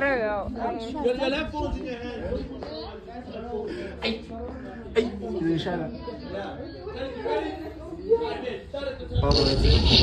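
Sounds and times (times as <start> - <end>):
indistinct chatter of voices: 0.0 - 10.0
loud rush of noise: 9.1 - 10.0.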